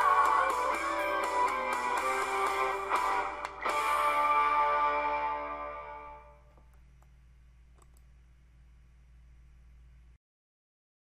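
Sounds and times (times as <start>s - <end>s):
faint low hum: 3.4s - 10.2s
small clicks: 6.5s - 8.1s.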